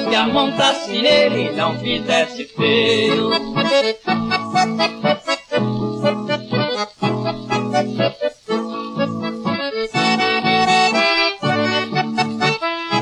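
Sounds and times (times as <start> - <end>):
accordion playing chords: 0.0 - 13.0.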